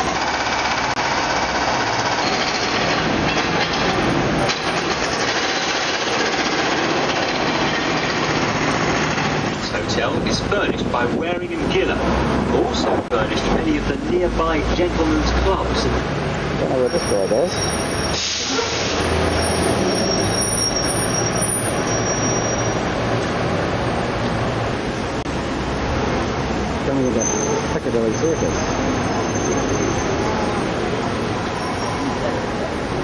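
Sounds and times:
bus engine running: 0:00.0 - 0:33.0
city traffic noise: 0:00.0 - 0:33.0.

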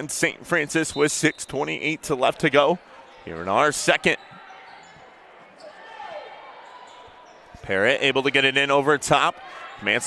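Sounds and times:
low murmur in gymnasium: 0:00.0 - 0:10.0.

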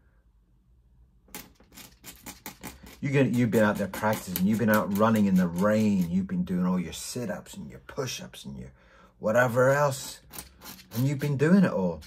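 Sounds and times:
pen scratching on paper: 0:01.4 - 0:06.2, 0:10.0 - 0:11.5.

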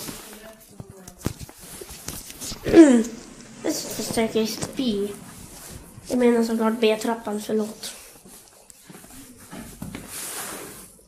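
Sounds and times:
handheld camera rustling: 0:00.0 - 0:02.7.

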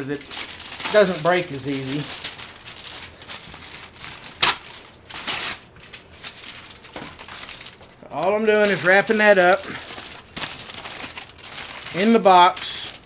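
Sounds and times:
aluminium foil crinkling: 0:00.0 - 0:13.0.

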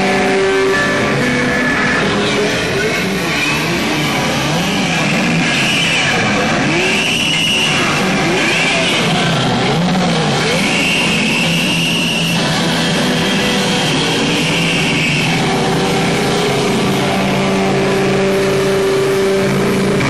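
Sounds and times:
distorted electric guitar sliding notes: 0:00.0 - 0:20.0.

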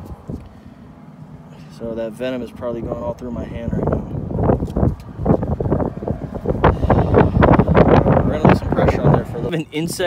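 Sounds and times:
wind buffeting microphone: 0:02.7 - 0:10.0.

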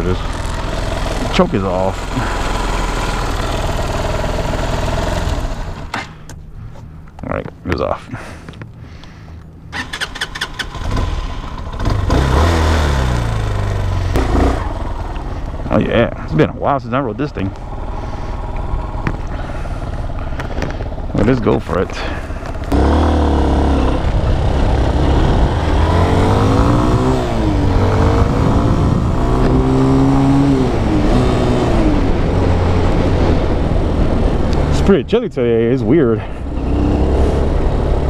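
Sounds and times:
motorcycle engine idling: 0:00.0 - 0:05.9, 0:13.3 - 0:25.6.

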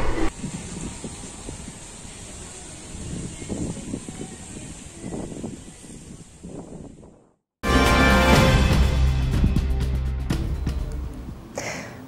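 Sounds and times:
steady high-pitched hiss: 0:00.3 - 0:06.6.

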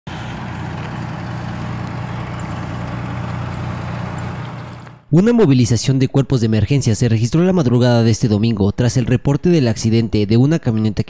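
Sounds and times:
truck engine idling: 0:00.0 - 0:05.1.

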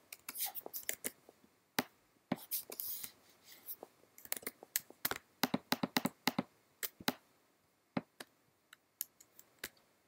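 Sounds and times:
keyboard and mouse clicks: 0:04.2 - 0:07.2.

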